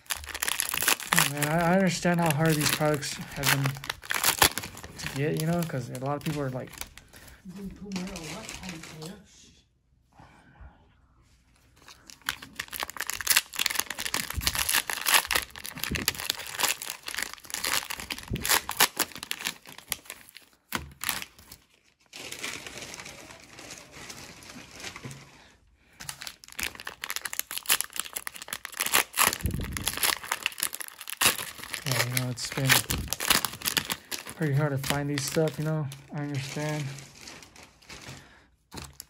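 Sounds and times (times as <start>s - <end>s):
plastic wrappers crinkling and tearing: 0.0s - 9.3s, 11.7s - 39.0s.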